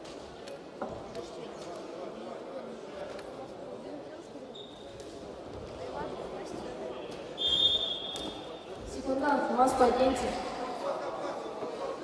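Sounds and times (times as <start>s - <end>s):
murmur of voices: 0.0s - 12.0s
referee's whistle: 7.4s - 8.3s.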